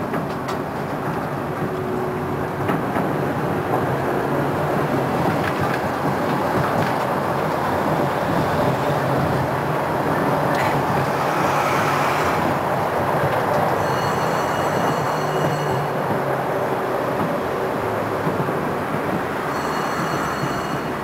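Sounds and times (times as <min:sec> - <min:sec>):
tram wheels rumbling: 0:00.0 - 0:21.0.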